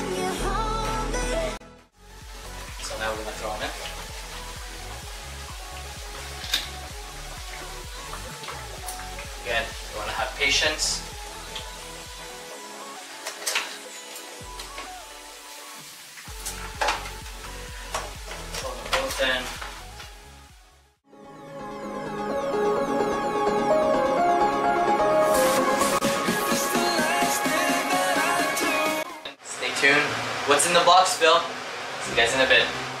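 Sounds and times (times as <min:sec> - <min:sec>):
pop music with steady beat: 0:00.0 - 0:29.4
water boiling in pot: 0:02.0 - 0:12.4.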